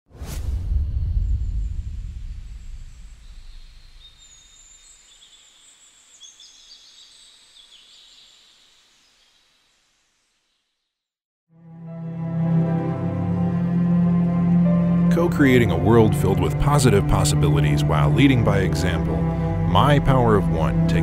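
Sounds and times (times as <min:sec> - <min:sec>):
deep boom: 0:00.1 - 0:04.3.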